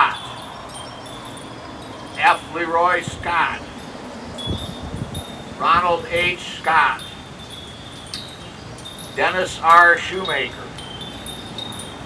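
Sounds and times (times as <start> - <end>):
high chiming tones: 0.0 - 12.0
outdoor background noise: 0.0 - 12.0.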